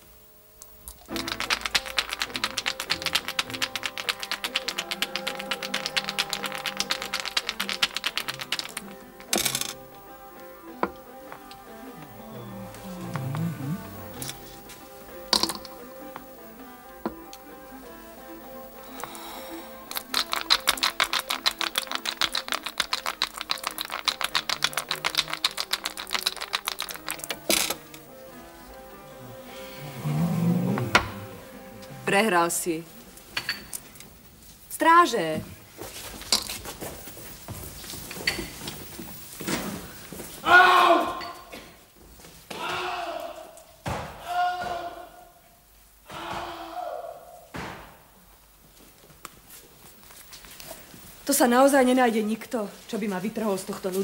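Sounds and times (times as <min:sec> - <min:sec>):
steady musical drone: 0:01.0 - 0:20.1, 0:26.3 - 0:33.3
dice knocking down: 0:01.1 - 0:09.8, 0:20.0 - 0:27.8
dice rattling in a cup: 0:01.1 - 0:09.8, 0:19.9 - 0:27.8.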